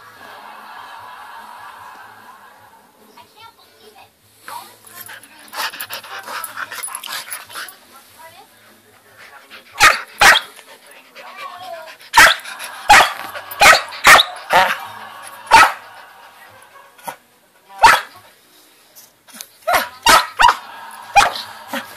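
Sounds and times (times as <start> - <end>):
puppy barking: 9.8 - 10.5, 12.2 - 14.7, 15.5 - 15.8, 17.8 - 18.1, 19.7 - 20.6.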